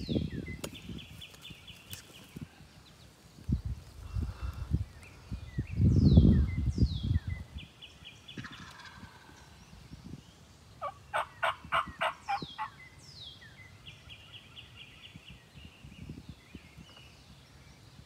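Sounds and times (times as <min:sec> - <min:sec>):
songbirds singing: 0:00.0 - 0:18.0
turkey gobbling: 0:08.4 - 0:09.3, 0:10.8 - 0:12.8.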